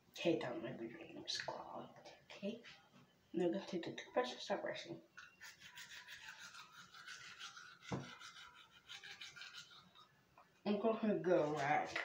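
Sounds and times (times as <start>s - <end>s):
toothbrush scrubbing teeth: 5.2s - 10.1s.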